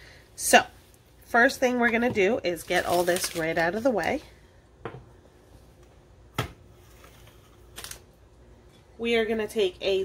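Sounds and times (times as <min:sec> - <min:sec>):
items knocking on stone countertop: 0:04.8 - 0:05.1.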